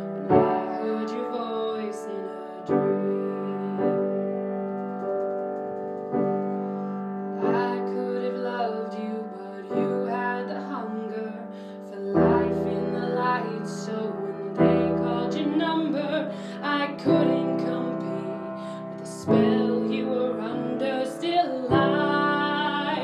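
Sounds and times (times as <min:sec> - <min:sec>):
slow piano ballad chords: 0:00.0 - 0:23.0.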